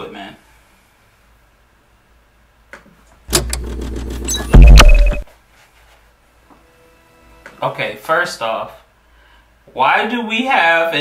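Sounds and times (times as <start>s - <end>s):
bass-heavy sound effect: 3.9s - 5.2s.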